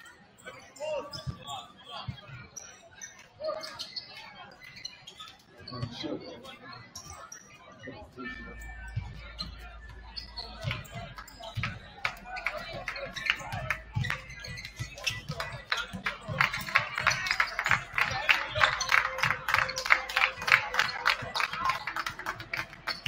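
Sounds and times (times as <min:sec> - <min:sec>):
crowd chatter: 0:00.0 - 0:23.0.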